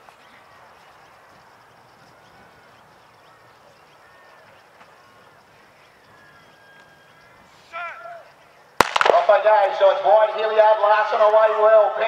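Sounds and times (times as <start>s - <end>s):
starter's pistol crack: 8.8s - 9.4s
gunshot echoes: 8.8s - 9.6s.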